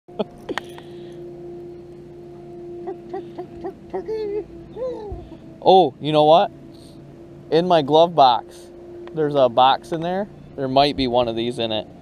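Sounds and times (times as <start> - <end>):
electric trolling motor humming: 0.1 - 12.0
short rising notes: 0.3 - 12.0.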